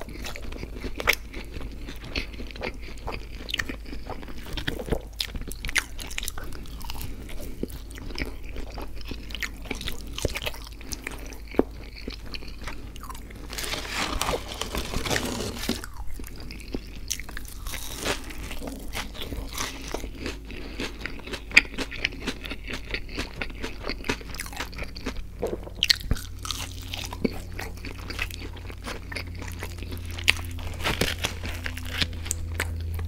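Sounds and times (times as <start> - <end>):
close chewing and biting: 0.0 - 33.0.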